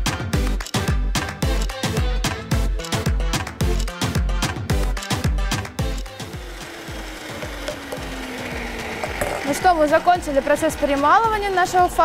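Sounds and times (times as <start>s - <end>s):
electric meat grinder running: 5.8s - 12.0s.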